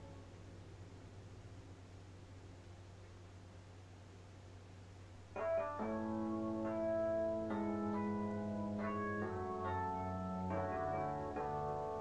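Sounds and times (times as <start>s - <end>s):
faint low hum: 0.0s - 12.0s
piano music: 5.4s - 12.0s.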